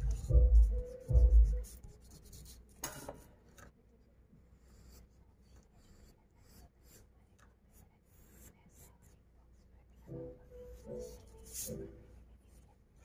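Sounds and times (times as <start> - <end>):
pencil scratching on paper: 0.0 - 2.8, 4.5 - 9.2, 10.8 - 11.9.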